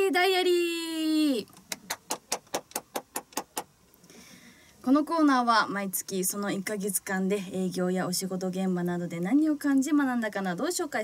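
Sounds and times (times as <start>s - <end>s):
person clapping hands: 1.7s - 3.7s.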